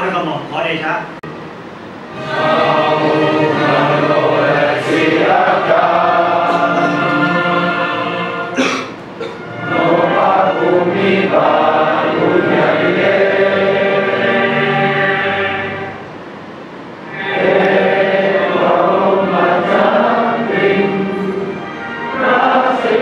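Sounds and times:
men singing in unison: 0:02.2 - 0:08.5.

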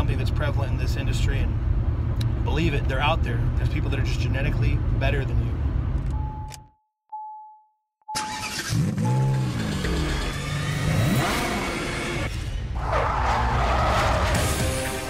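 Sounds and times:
dashboard warning chime: 0:06.1 - 0:09.7
car engine starting and revving: 0:08.2 - 0:15.0
music: 0:14.3 - 0:15.0.

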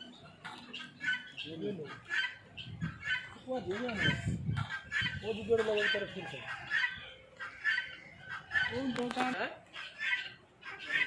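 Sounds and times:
guineafowl harsh calls: 0:00.0 - 0:11.0.

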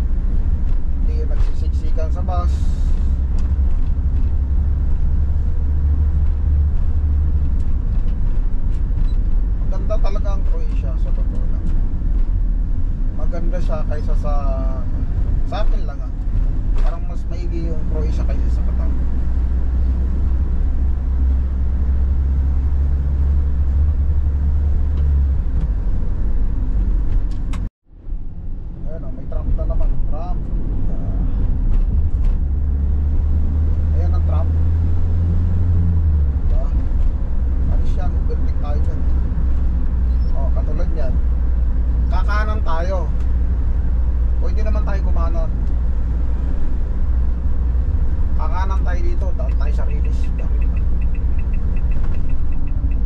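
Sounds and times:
van engine and road rumble: 0:00.0 - 0:53.0.

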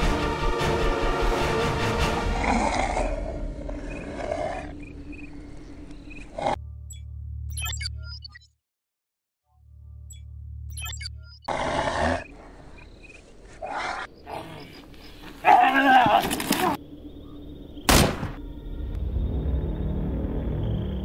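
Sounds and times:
low music drone: 0:00.0 - 0:07.4, 0:16.8 - 0:21.0
creature roaring and growling: 0:02.1 - 0:04.7.

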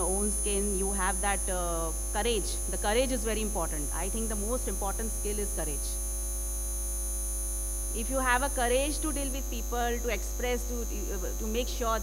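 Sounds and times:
electrical mains hum: 0:00.0 - 0:12.0
faint high-pitched whine: 0:00.0 - 0:12.0.

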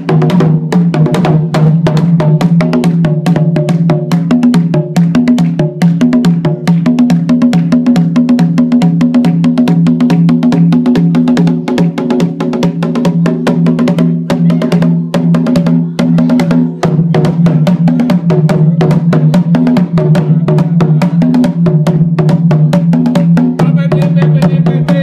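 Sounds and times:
drums played with sticks: 0:00.0 - 0:25.0.

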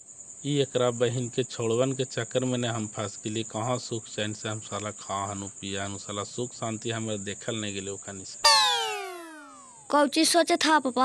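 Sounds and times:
insect drone: 0:00.0 - 0:11.0
man talking: 0:00.5 - 0:08.4.

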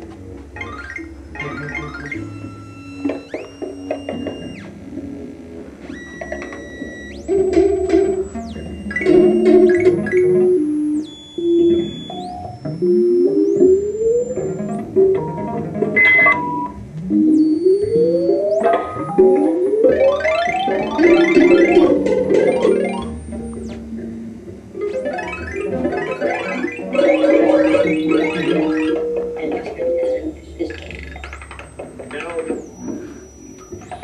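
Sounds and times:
high held synth tones: 0:00.0 - 0:34.0.

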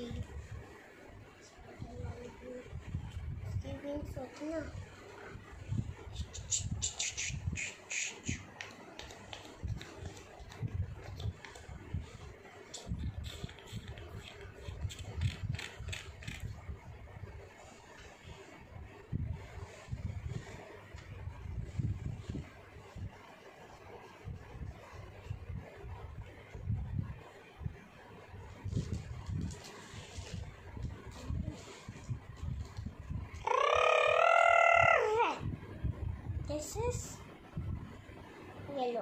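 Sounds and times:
marker scribbling on paper: 0:06.2 - 0:11.6, 0:12.2 - 0:16.5
child holding high note: 0:33.4 - 0:35.4.

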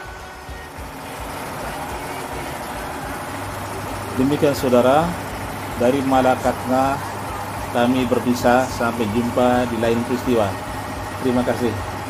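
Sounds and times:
grain polishing machine running: 0:00.0 - 0:12.0.

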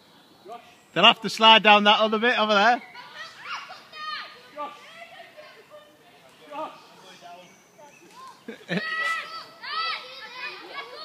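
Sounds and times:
children shouting: 0:02.8 - 0:06.8, 0:08.1 - 0:11.0
children playing and calling out: 0:02.8 - 0:07.0, 0:07.6 - 0:11.0.

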